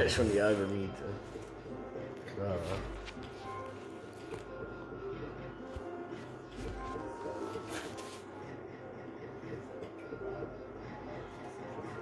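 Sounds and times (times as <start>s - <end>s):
gaming arcade background noise: 0.0s - 12.0s.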